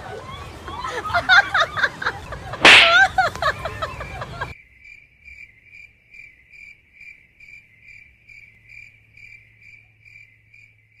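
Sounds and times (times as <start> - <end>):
cricket chirping: 4.6 - 11.0.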